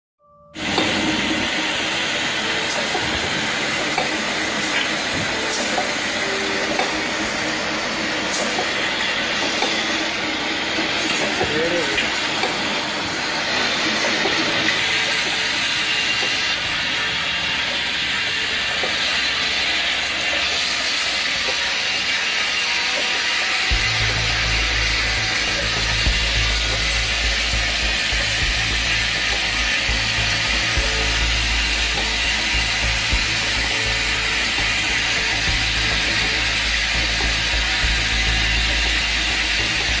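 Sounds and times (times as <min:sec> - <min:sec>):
machine whir and clatter: 0:00.6 - 0:40.0
deep hum: 0:23.7 - 0:40.0.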